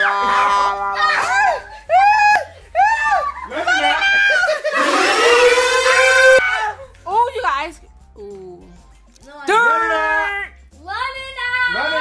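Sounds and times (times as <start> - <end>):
loud long scream: 0.0 - 6.7
shrieking voices: 0.0 - 6.8.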